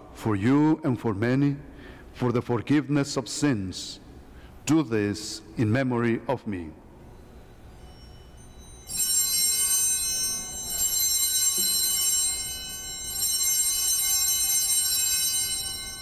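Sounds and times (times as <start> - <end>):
altar bells jangling: 7.0 - 16.0.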